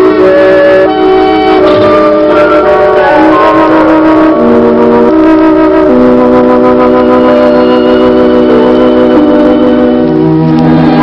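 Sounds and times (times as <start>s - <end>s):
slow organ chords: 0.0s - 11.0s.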